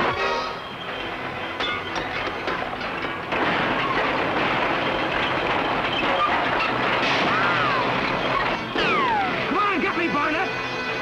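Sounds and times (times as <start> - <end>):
bulldozer engine clattering: 0.0 - 11.0.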